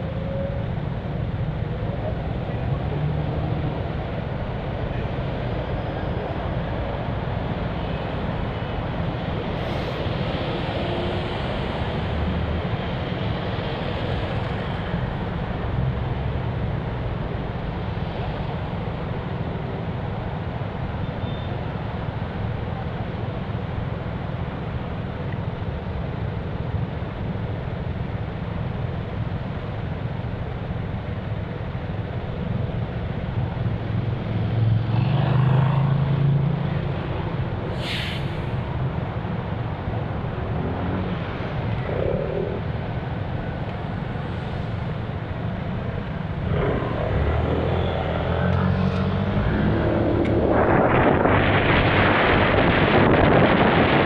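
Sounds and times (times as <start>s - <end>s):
road traffic rumble: 0.0s - 54.0s
vehicle passing close: 46.2s - 54.0s.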